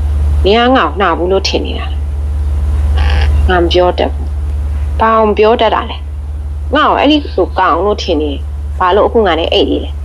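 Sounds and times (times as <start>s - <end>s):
steady low hum: 0.0s - 10.0s
woman narrating: 0.4s - 2.0s, 3.4s - 4.3s, 5.0s - 6.0s, 6.7s - 10.0s.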